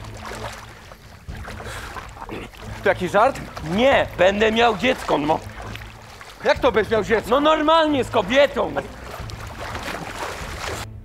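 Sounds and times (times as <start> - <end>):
water splashing around swimmers: 0.0 - 11.0.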